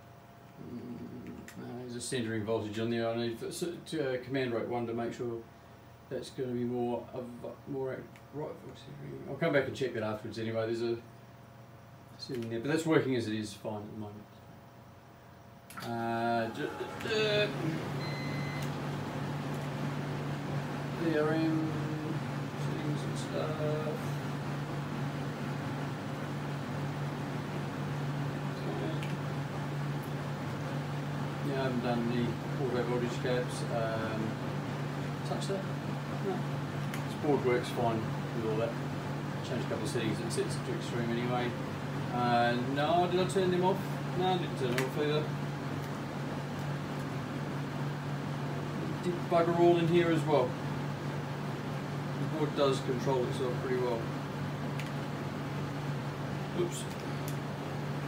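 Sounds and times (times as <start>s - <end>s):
faint high whine: 0.0s - 45.5s
low mechanical hum: 0.0s - 58.0s.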